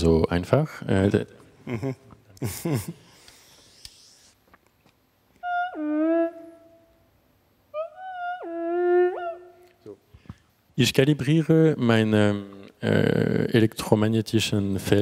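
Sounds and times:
theremin sliding notes: 0:05.4 - 0:07.0, 0:07.7 - 0:09.8.

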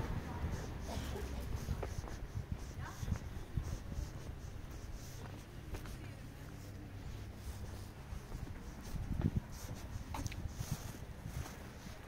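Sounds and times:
wind rumble on microphone: 0:00.0 - 0:04.9, 0:07.2 - 0:12.0
footsteps on pavement: 0:00.0 - 0:12.0.

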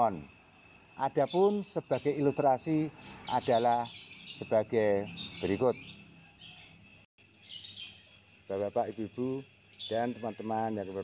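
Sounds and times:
faint bird chirping: 0:00.0 - 0:11.0.

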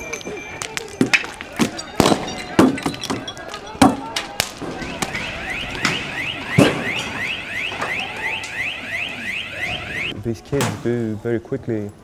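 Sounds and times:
street noise: 0:00.0 - 0:12.0
sharp bangs: 0:01.0 - 0:10.9
electronic alarm whooping: 0:04.8 - 0:10.1.

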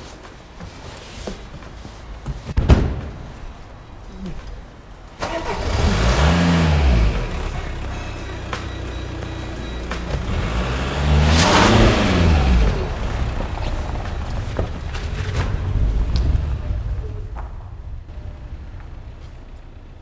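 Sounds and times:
car engine starting and revving: 0:05.2 - 0:17.2.

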